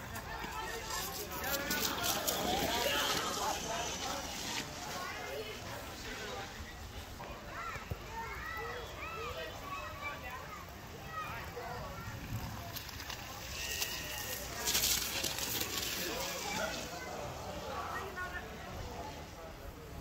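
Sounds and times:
children calling and chattering: 0.0 - 20.0
child sliding on wet tarp: 0.3 - 6.4, 12.4 - 18.4.

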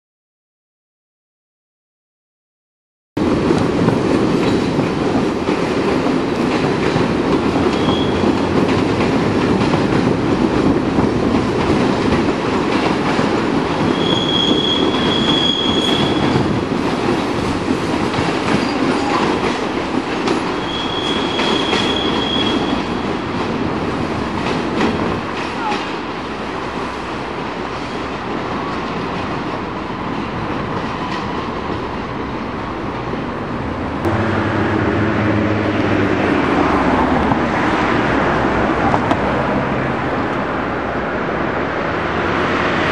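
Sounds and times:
train wheels rumbling on rails: 3.2 - 42.9
high wheel squeal: 7.7 - 8.4, 13.8 - 16.4, 20.6 - 23.0.

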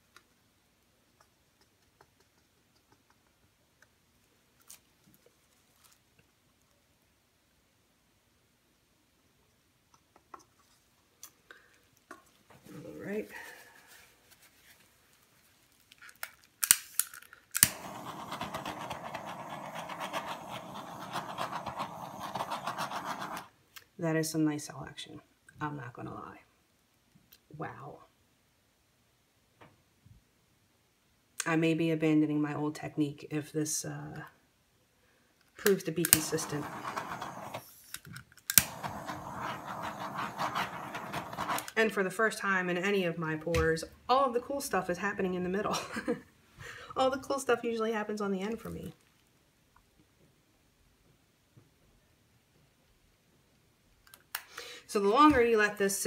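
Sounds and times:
butane torch igniter clicks: 17.6 - 22.5, 35.7 - 40.1
torch flame hissing: 17.6 - 23.5, 36.0 - 37.9, 38.5 - 41.8.

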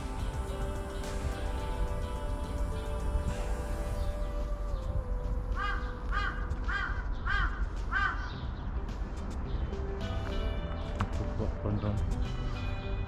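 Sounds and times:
crow cawing: 5.6 - 8.4.

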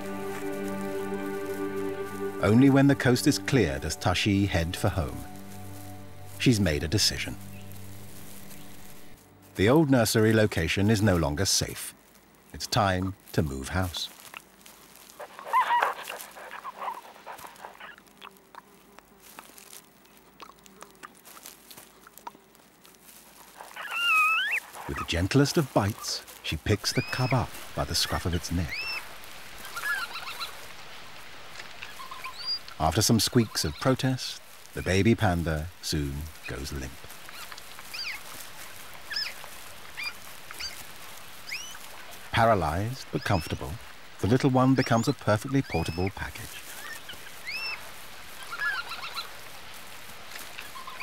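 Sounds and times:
forest ambience hiss: 0.0 - 51.0
rustling in dry bedding: 0.0 - 51.0
red panda high wavering calls: 23.7 - 24.6, 29.7 - 30.6, 37.3 - 38.3, 39.1 - 40.8, 46.8 - 47.8, 48.4 - 49.3, 50.6 - 51.0
red panda cub squeaking: 23.8 - 25.0, 37.3 - 38.2, 39.1 - 39.4, 40.0 - 40.8.

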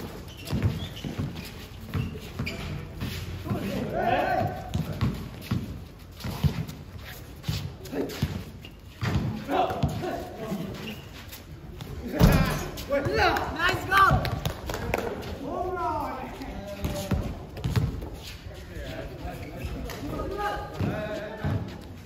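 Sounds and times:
basketball bouncing on concrete: 0.4 - 3.0, 4.3 - 6.8, 16.8 - 18.1.

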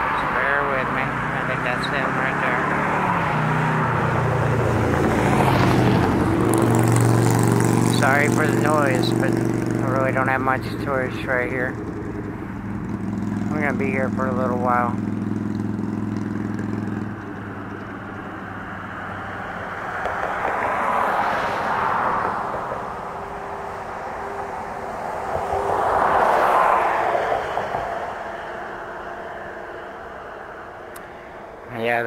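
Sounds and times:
low steady engine hum: 0.0 - 32.0
vehicles passing over bridge: 0.0 - 32.0.

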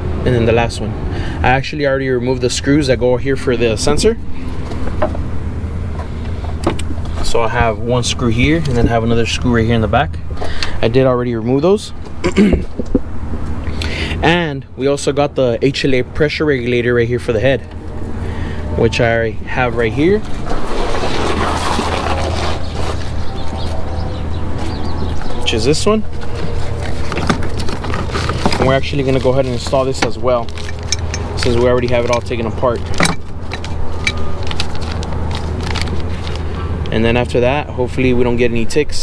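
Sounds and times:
steady low hum: 0.0 - 38.6.

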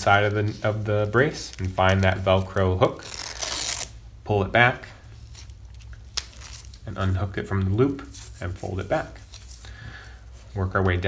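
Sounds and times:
velcro strap rustling: 0.0 - 4.0, 5.2 - 9.7.

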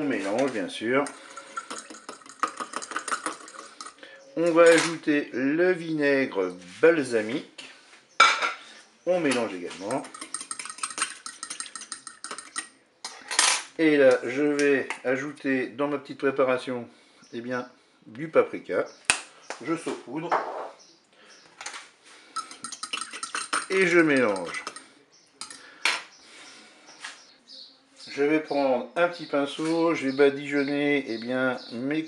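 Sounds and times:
spoon clinking in glass bowl: 0.4 - 4.1, 9.7 - 12.8, 22.4 - 25.7.

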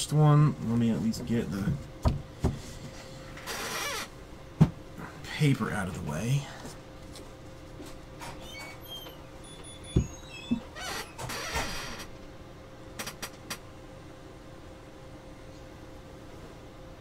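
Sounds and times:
faint high squeaks: 8.2 - 12.0.

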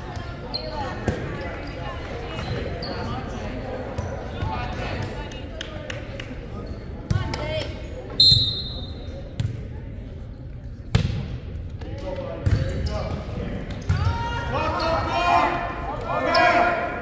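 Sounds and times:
chatter of people: 0.0 - 17.0
sneaker squeaks: 0.4 - 4.4, 7.9 - 9.5.

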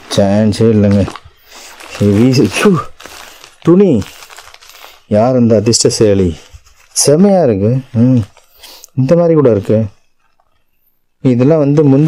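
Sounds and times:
man speaking: 0.0 - 1.2, 1.9 - 3.0, 3.6 - 4.1, 5.1 - 10.0, 11.2 - 12.0
plastic wrapping rustling: 0.0 - 10.8.

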